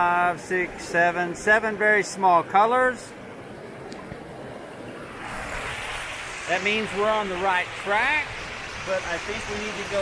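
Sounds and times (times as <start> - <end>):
stream rushing over rocks: 5.0 - 10.0.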